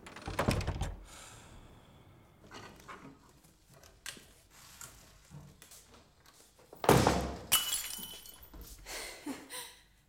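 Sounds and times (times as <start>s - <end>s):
glass crash with ringing: 7.5s - 8.5s.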